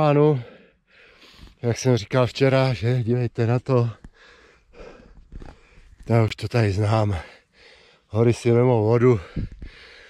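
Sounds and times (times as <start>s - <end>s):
person breathing hard: 0.4s - 1.6s, 4.1s - 6.0s, 7.2s - 8.1s, 9.2s - 10.0s.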